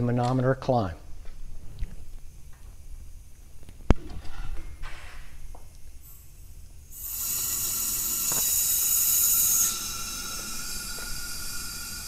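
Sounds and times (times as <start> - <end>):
high gas hiss: 1.6 - 12.0.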